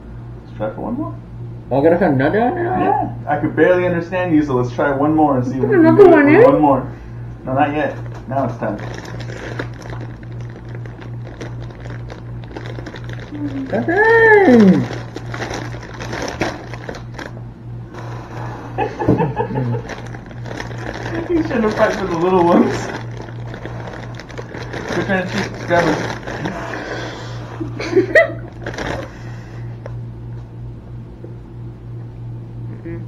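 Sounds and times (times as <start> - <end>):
steady low hum: 0.0 - 33.0
plastic bag crinkling: 7.8 - 17.4, 19.4 - 27.2, 27.8 - 29.3.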